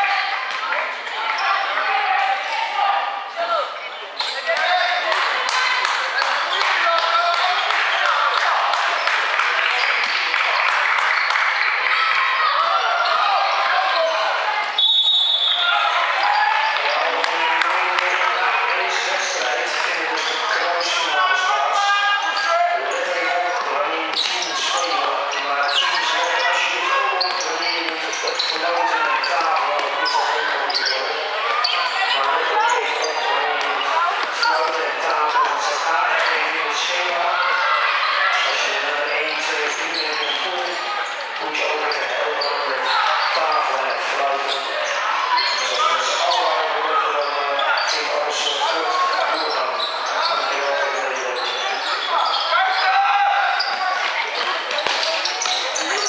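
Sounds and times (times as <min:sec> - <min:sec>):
indistinct shouting voices: 0:00.0 - 0:56.0.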